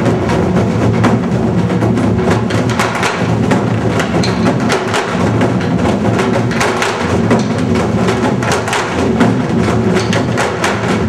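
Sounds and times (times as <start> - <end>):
barrel drums struck with sticks: 0.0 - 11.0.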